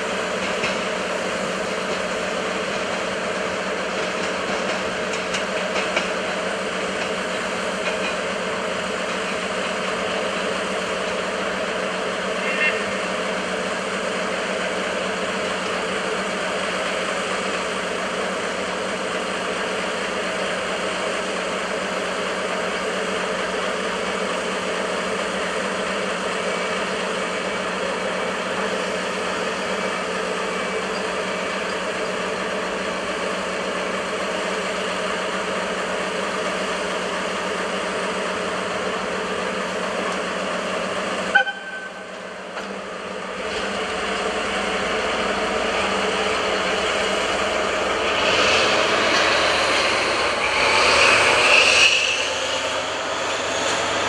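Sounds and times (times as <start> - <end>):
engine idling drone: 0.0 - 54.0
high toot: 41.3 - 42.2.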